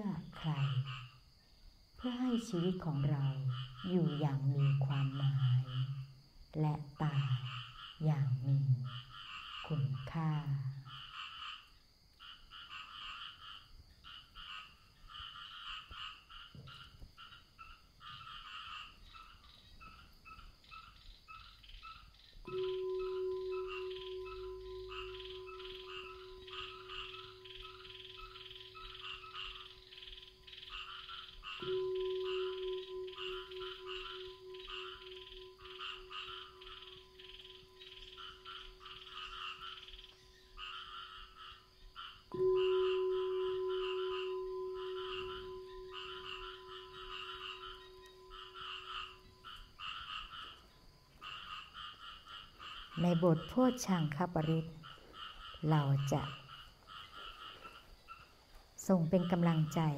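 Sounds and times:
frogs croaking: 0:00.0 - 0:59.9
singing bowl ringing: 0:22.5 - 0:30.8, 0:31.6 - 0:40.4, 0:42.3 - 0:49.8.

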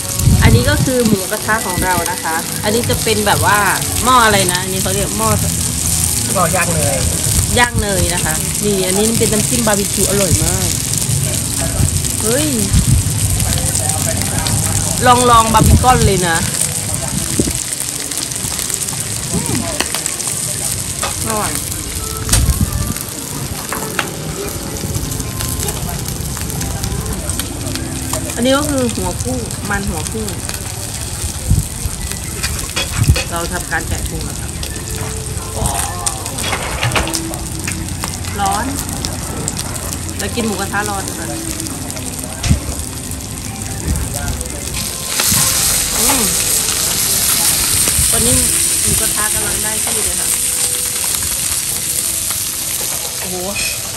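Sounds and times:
meat sizzling on a grill: 0:00.0 - 0:53.9.

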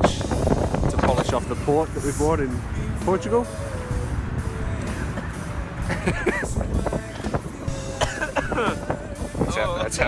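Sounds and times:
soft background music: 0:00.0 - 0:10.0
wind buffeting microphone: 0:00.0 - 0:10.0.

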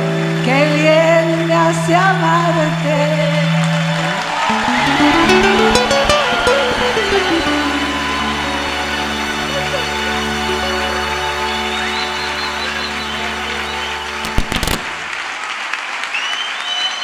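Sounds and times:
guitar run: 0:01.9 - 0:10.8
acoustic guitars playing: 0:04.4 - 0:12.2.

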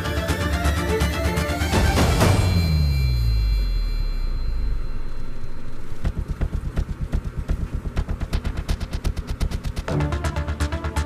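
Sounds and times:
fast low pulsing beat: 0:04.3 - 0:11.0.

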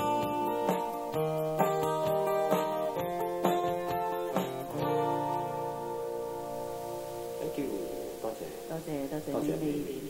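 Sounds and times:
solo guitar playing: 0:00.0 - 0:10.0.

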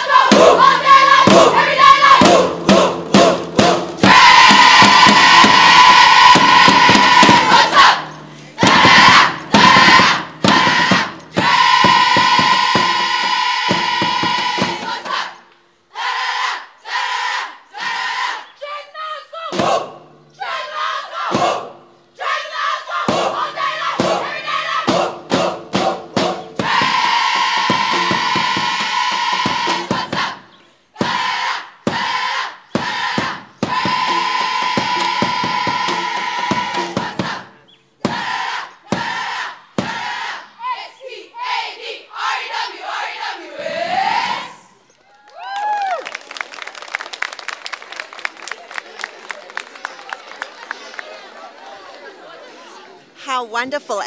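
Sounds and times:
girls chanting and shouting in unison: 0:00.0 - 0:02.5, 0:04.0 - 0:21.6, 0:22.2 - 0:25.0, 0:38.0 - 0:44.8.

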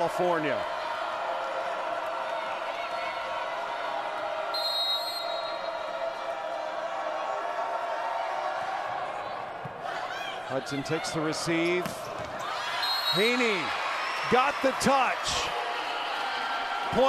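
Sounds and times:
arena crowd noise: 0:00.0 - 0:17.0
referee's whistle: 0:04.5 - 0:05.9, 0:12.8 - 0:13.7.

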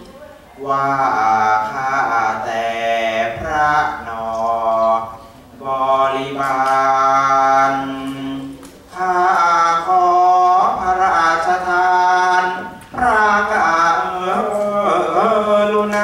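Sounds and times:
person singing long bending notes: 0:00.6 - 0:16.0.

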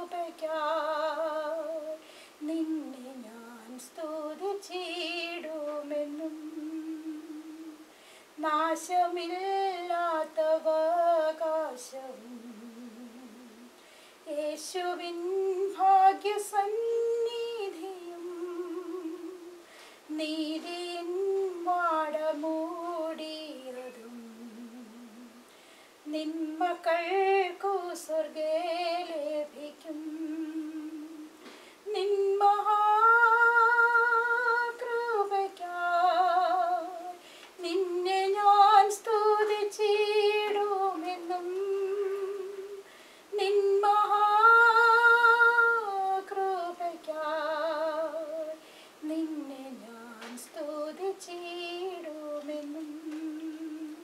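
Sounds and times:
woman singing a hymn: 0:00.0 - 0:54.0.

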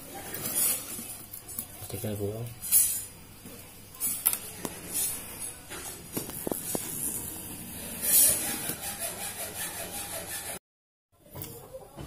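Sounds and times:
fingernails scraping plastic film: 0:05.8 - 0:10.6.

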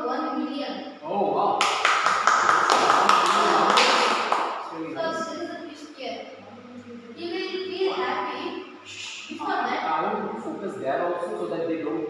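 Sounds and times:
boy speaking: 0:00.0 - 0:01.0, 0:03.2 - 0:04.2, 0:04.8 - 0:10.8.

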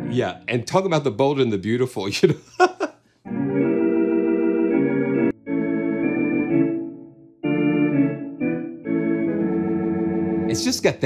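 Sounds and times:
organ playing held chords: 0:00.0 - 0:00.5, 0:03.3 - 0:10.8.

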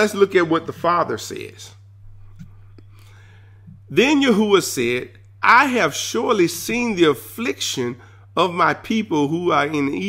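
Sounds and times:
person speaking: 0:00.0 - 0:01.8, 0:03.7 - 0:10.0
steady low hum: 0:00.0 - 0:10.0.

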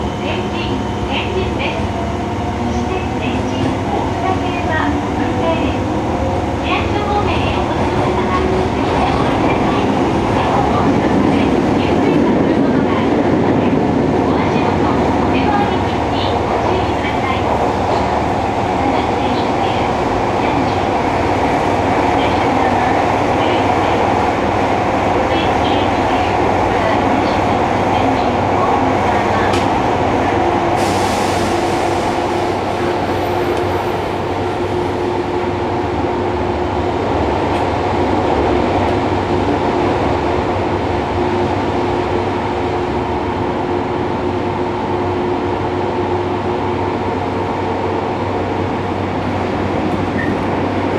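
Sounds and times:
subway train rumbling in tunnel: 0:00.0 - 0:50.9.

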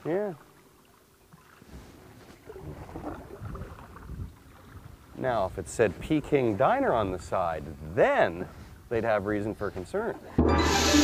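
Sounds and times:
paddle splashing in water: 0:00.8 - 0:05.2.

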